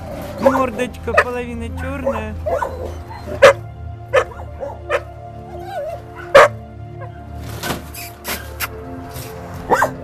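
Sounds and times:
puppies yapping: 0.0s - 8.6s, 9.6s - 10.0s.

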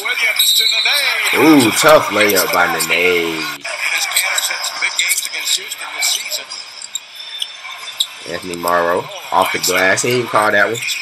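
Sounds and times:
commentator talking: 0.0s - 6.5s, 8.3s - 11.0s
arena crowd noise: 0.0s - 11.0s.

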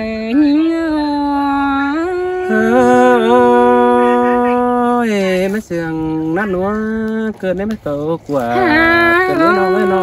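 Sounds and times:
person singing long notes: 0.0s - 5.1s, 8.5s - 10.0s
lower voice singing: 0.0s - 7.4s, 8.4s - 10.0s.

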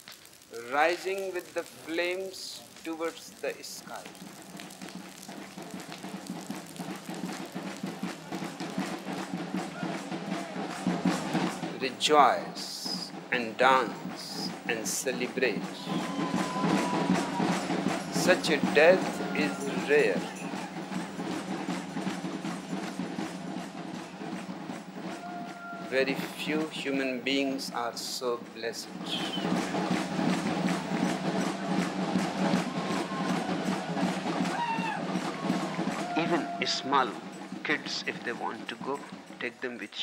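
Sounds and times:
fire crackling and hissing: 0.0s - 38.0s
noise of a dancing crowd: 0.0s - 39.6s
drumming at a steady rhythm: 3.6s - 39.6s.

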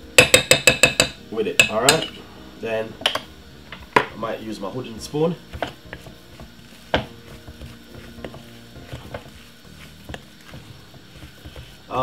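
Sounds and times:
spoon knocking on glass bowl: 0.2s - 2.1s
spoon tapping bowl: 0.2s - 2.1s
spoon stirring thick batter: 4.8s - 12.0s.

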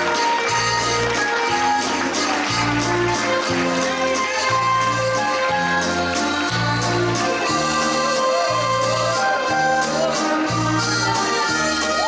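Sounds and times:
dance band playing a waltz: 0.0s - 12.0s.

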